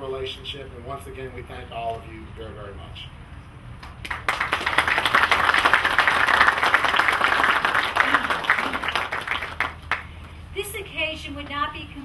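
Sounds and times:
audience applauding: 4.0 - 10.1.

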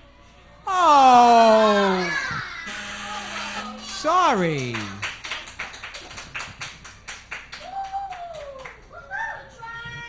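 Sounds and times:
drawn-out voice-like sound: 0.7 - 2.2.

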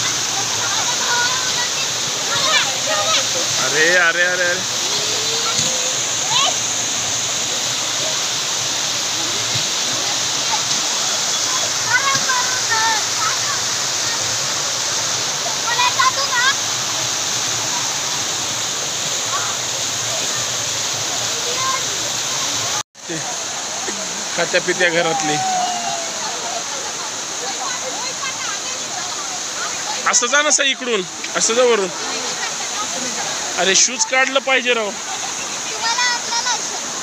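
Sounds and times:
waterfall over rock: 0.0 - 37.0.

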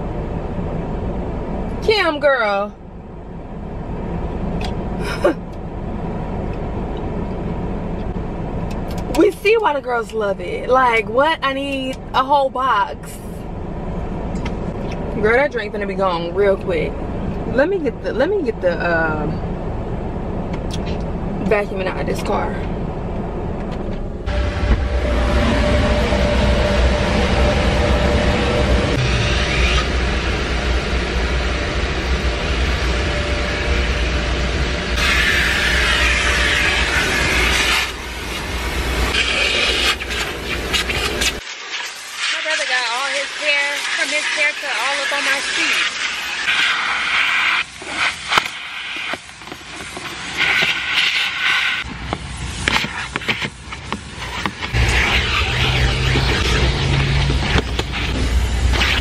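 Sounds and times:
car vacuum running: 23.0 - 59.0
vacuum hose sucking air: 24.3 - 59.0.

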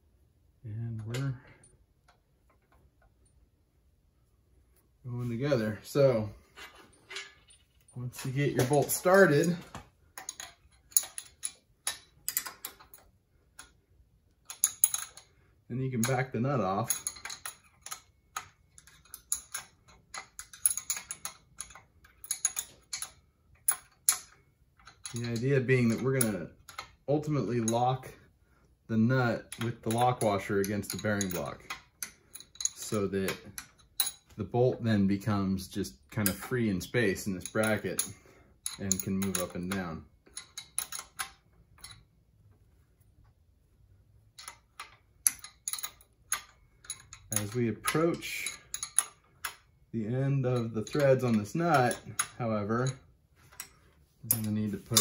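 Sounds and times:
wrench clicking on nut: 37.4 - 42.0, 44.4 - 49.6.

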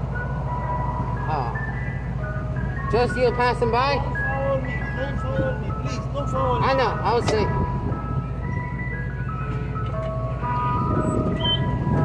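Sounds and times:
diesel engine rumbling: 0.0 - 12.0
ice cream truck chime music: 0.0 - 12.0.

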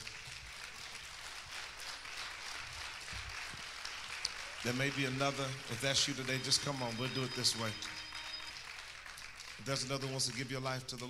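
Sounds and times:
congregation applauding: 0.0 - 11.0.

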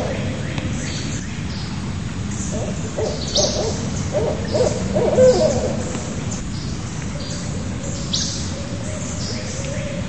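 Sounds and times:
owl hooting: 2.5 - 5.9.

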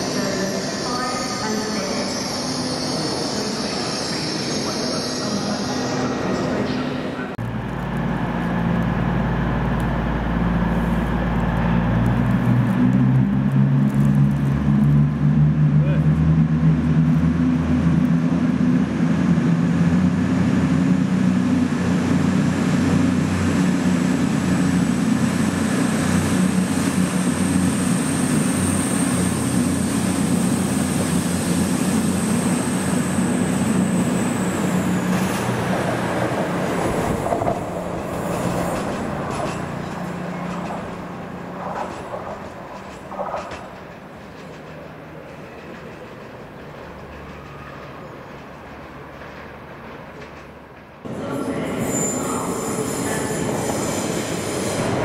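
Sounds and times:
diesel train passing: 0.0 - 55.0.

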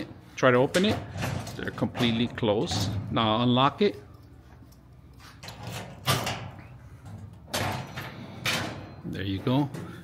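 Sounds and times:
metal drawer rattling and sliding: 0.7 - 3.3, 5.4 - 10.0.

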